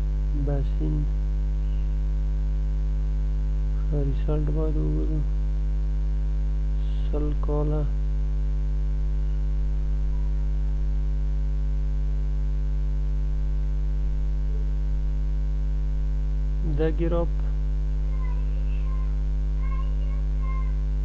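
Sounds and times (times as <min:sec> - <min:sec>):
electrical hum: 0:00.0 - 0:21.0
man speaking: 0:00.3 - 0:01.1, 0:03.8 - 0:05.3, 0:06.8 - 0:08.0, 0:16.6 - 0:17.5.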